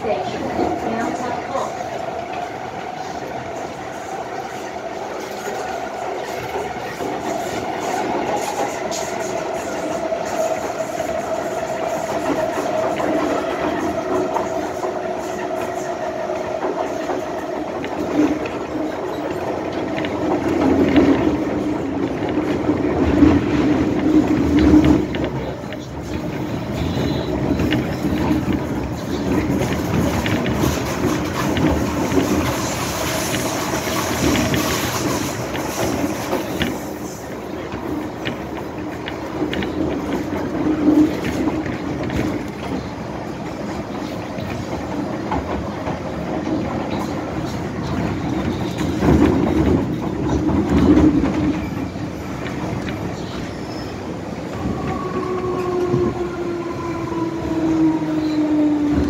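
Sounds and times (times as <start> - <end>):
wheels rumbling on rail: 0.0 - 59.0.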